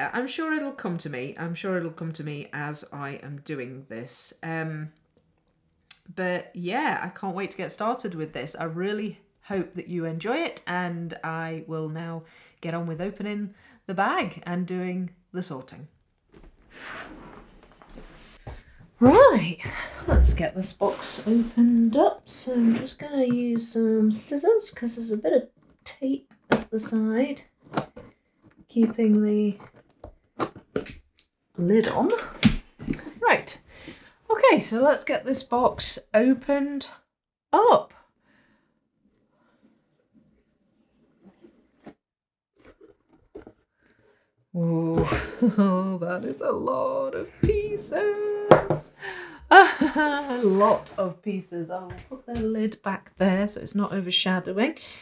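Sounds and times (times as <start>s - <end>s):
cardboard box lid sliding: 39.5s - 42.0s, 50.0s - 51.0s
cardboard box rustling: 42.6s - 44.1s.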